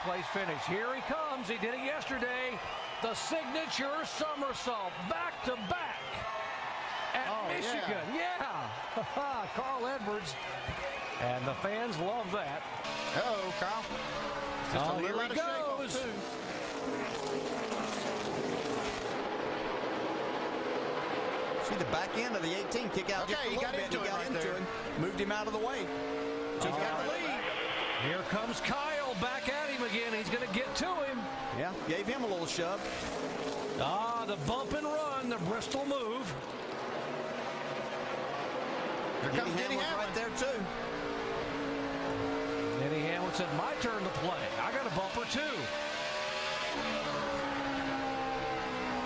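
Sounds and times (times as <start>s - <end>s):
race car engines passing: 0.0s - 49.0s.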